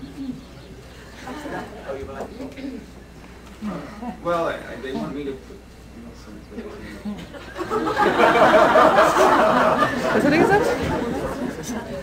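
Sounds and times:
voices murmuring: 0.0s - 12.0s.

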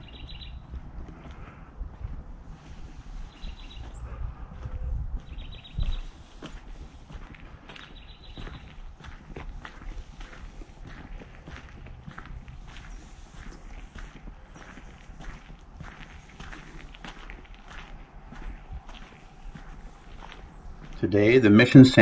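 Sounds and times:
footsteps on dirt path: 0.0s - 22.0s
steady low rumble: 0.0s - 22.0s.

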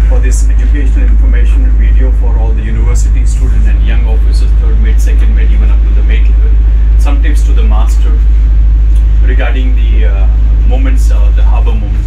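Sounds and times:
boat engine low drone: 0.0s - 12.0s.

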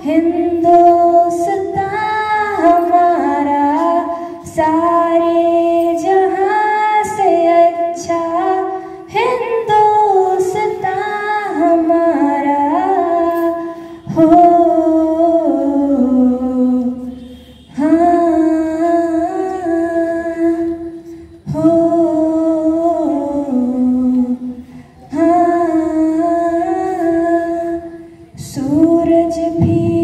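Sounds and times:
girl singing into a microphone: 0.0s - 30.0s.

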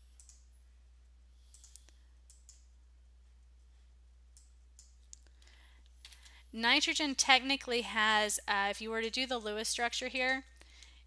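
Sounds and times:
steady low hum: 0.0s - 11.0s
computer mouse clicks: 0.1s - 0.5s, 1.4s - 2.7s, 4.3s - 6.4s.

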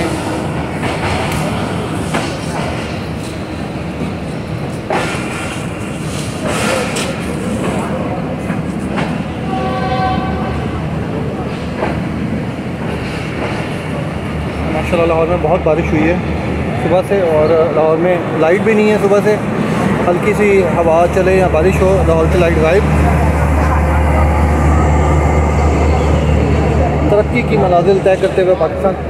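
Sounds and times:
train wheels rumbling on track: 0.0s - 29.0s.

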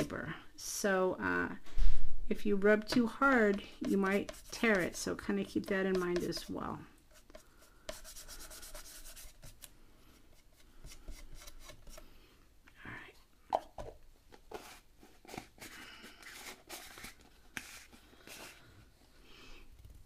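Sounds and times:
paintbrush brushing on paper: 2.7s - 9.6s.

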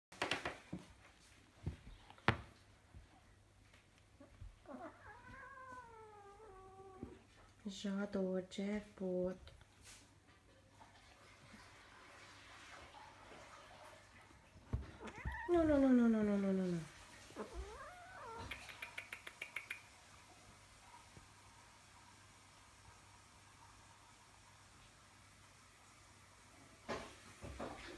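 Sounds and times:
kitten crying: 4.7s - 7.1s, 15.0s - 15.8s, 17.4s - 18.7s
kitten calling: 15.0s - 15.8s, 17.4s - 19.8s.

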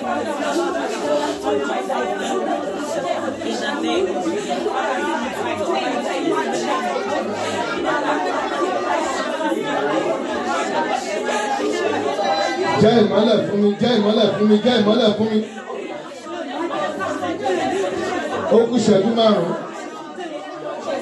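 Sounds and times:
people praying aloud: 0.0s - 21.0s.

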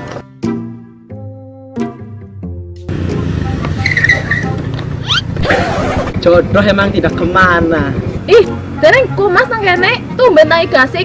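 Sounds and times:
motor scooter engine running: 2.9s - 8.2s
tyre squeal skidding: 3.8s - 6.1s.

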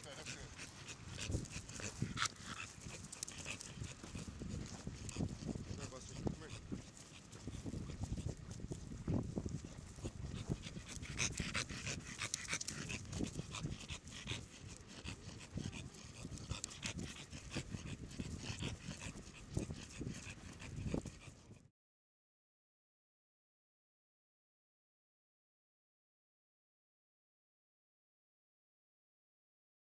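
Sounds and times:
dog panting: 0.0s - 21.7s.

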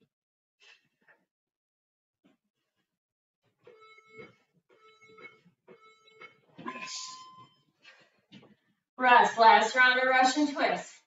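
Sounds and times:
electronic beep: 3.8s - 7.6s.

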